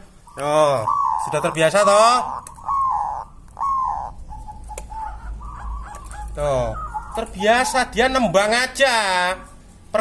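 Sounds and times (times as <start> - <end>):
dove cooing: 0.0 - 9.6.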